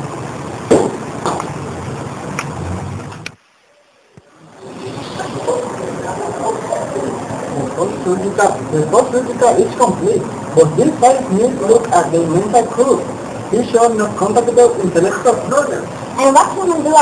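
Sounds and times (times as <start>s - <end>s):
room background noise: 0.0s - 17.0s
faint voices: 3.7s - 17.0s.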